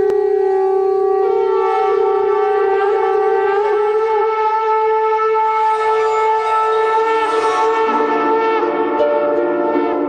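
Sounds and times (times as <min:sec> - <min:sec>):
horn-like wind instrument notes: 0:00.0 - 0:10.0.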